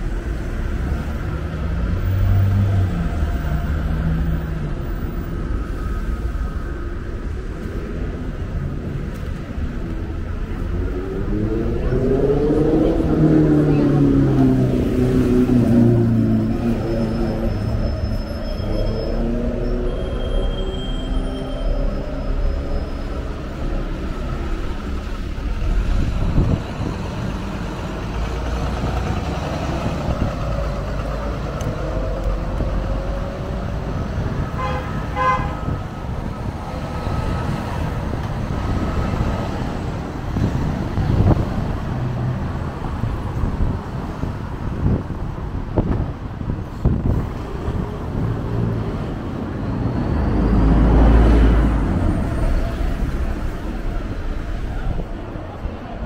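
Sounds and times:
bus engine pulling away: 0.0 - 56.0
road traffic: 0.0 - 56.0.

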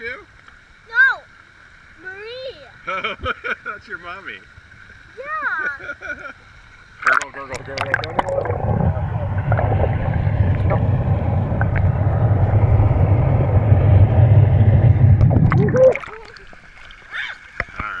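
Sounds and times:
muffled underwater churning water: 6.4 - 18.0.

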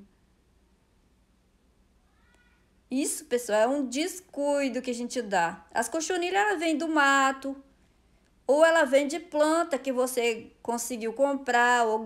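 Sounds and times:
faint animal call: 2.0 - 2.7.

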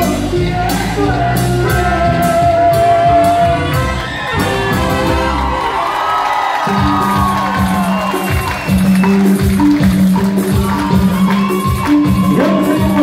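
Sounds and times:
latin dance band playing: 0.0 - 13.0.

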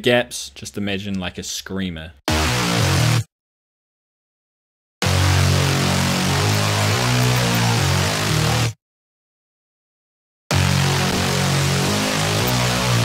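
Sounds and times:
saw-wave bass synth riff: 2.3 - 3.3, 5.0 - 8.8, 10.5 - 13.0.

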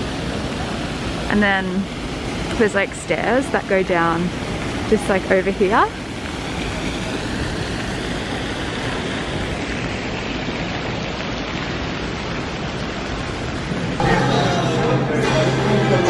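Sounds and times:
fountain water rushing: 0.0 - 16.0.

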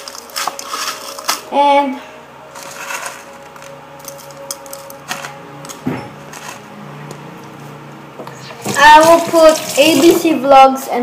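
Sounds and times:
food mixed by hand in bowl: 0.0 - 1.5, 2.5 - 5.4.

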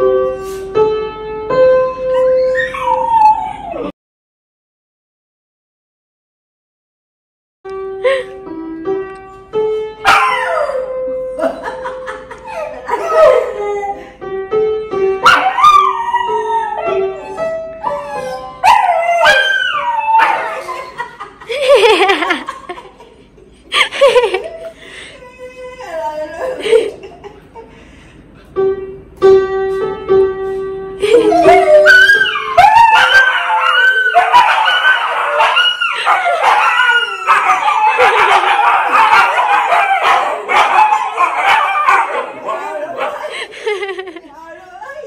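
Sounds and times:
piano note: 0.0 - 2.6, 28.5 - 32.6
dog howling: 15.2 - 20.8, 31.1 - 43.5
piano note ringing: 28.6 - 31.8.

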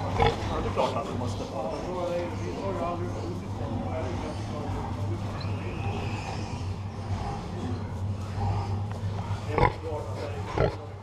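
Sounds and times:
pig grunting: 0.0 - 11.0
steady low hum: 0.0 - 11.0.

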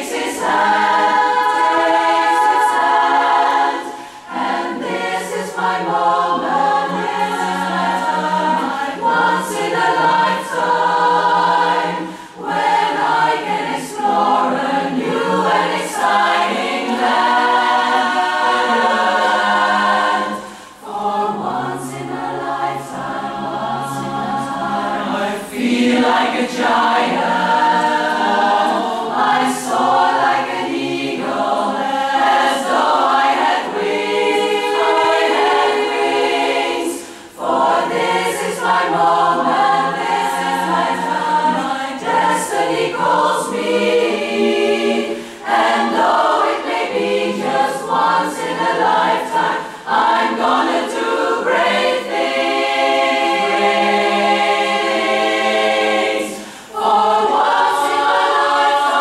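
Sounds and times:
women's chorus singing a cappella: 0.0 - 59.0.

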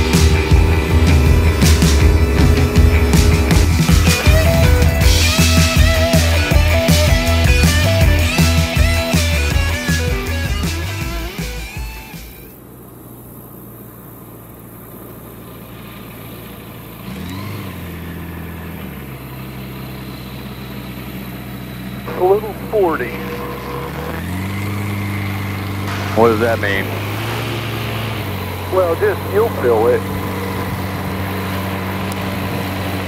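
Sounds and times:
rock music: 0.0 - 12.5, 22.0 - 33.0
plane piston engine taxiing: 0.0 - 33.0.

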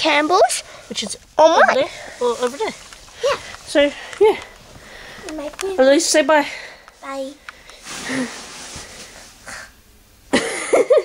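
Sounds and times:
girl squealing: 1.4 - 1.9
girl yelping like a dog: 1.4 - 1.9.

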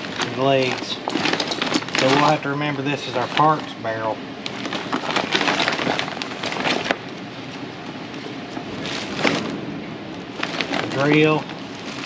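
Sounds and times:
crinkling of gift bag and wrappings: 0.0 - 12.0.

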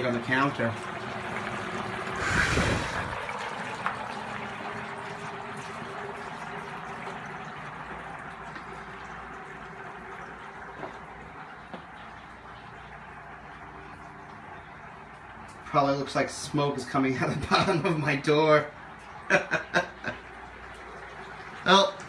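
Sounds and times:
dry ice bubbling in water: 0.0 - 22.0
rush of noise: 2.2 - 3.2.

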